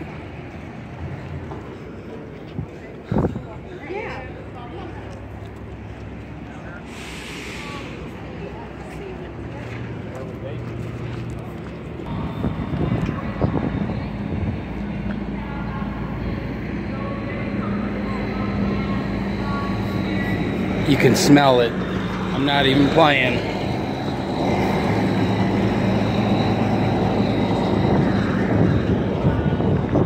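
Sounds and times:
engine humming: 0.0 - 30.0
faint voices: 0.0 - 30.0.

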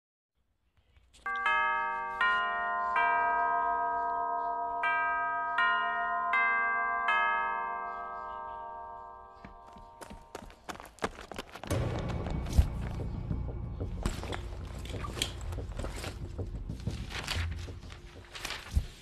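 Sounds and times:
bell-like chime notes: 1.3 - 10.5.

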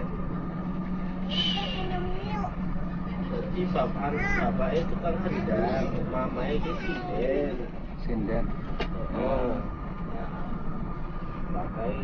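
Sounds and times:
bus engine and road rumble: 0.0 - 12.0
voices talking: 1.2 - 12.0.

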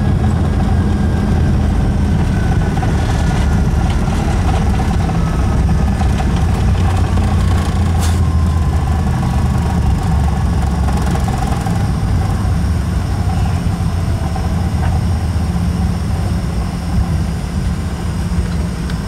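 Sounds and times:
aircraft engines rumbling: 0.0 - 19.0
faint engine whine: 0.0 - 19.0.

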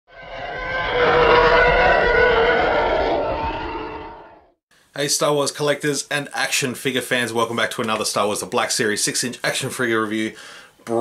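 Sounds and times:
sustained many-toned roar: 0.1 - 4.6.

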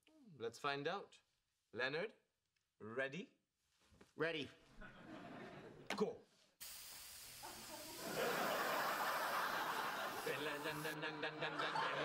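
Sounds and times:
studio audience laughter: 4.8 - 5.9, 7.4 - 12.0
aerosol can spraying: 6.6 - 11.0.

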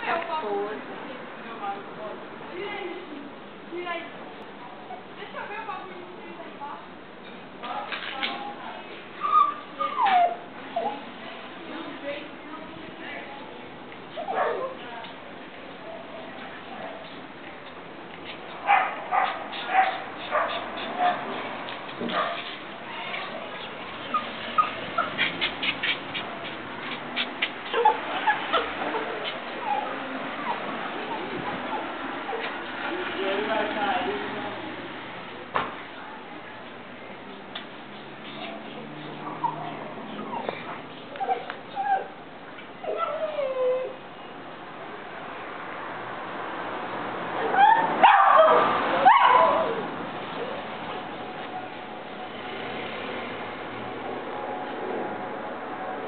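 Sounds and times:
dog whimpering: 9.2 - 11.0, 22.9 - 26.0, 27.6 - 32.5, 39.2 - 42.2, 42.8 - 44.0
small dog barking high-pitched: 18.7 - 21.2, 47.6 - 49.8.

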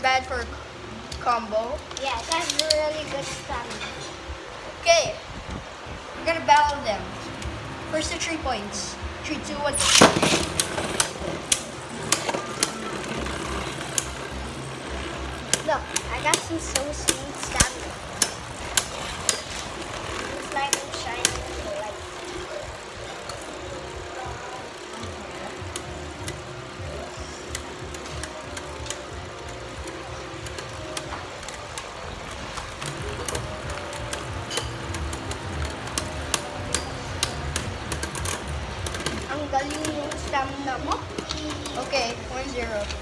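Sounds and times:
spinning tops whirring: 7.1 - 43.0
spinning tops clacking together: 9.8 - 41.8.

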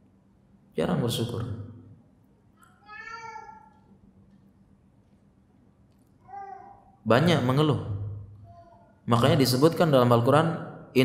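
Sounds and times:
room sound: 0.0 - 11.0
cat meowing: 2.8 - 3.7.

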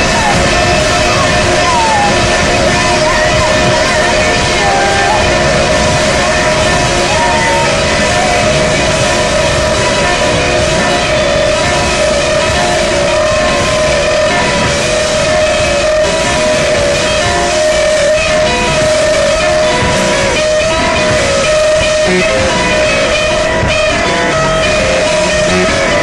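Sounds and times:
loud distorted electric guitar: 0.0 - 26.0.

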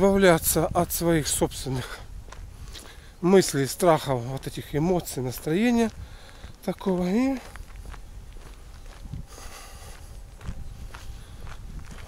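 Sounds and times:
footsteps on a path: 0.0 - 12.0
low steady rumble: 0.0 - 12.0.

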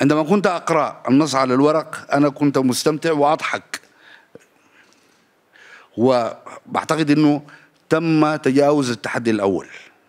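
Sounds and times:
soft intake of breath: 3.9 - 6.0.

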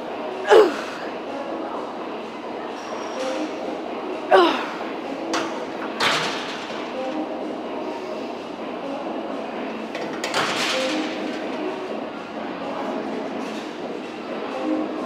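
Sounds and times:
woman grunting with effort: 0.5 - 1.0, 4.3 - 4.8.

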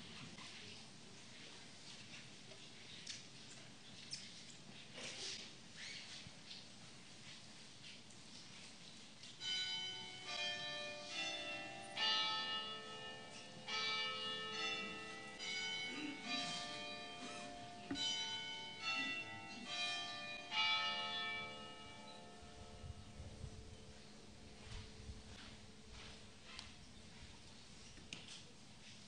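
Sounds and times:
church bells chiming: 9.4 - 26.0.

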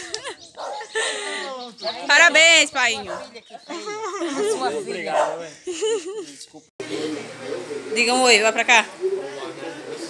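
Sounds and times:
people talking: 1.0 - 10.0.

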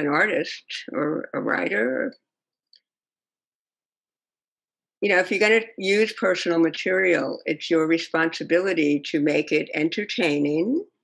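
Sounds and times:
woman's voice: 0.0 - 2.2, 5.0 - 11.0.

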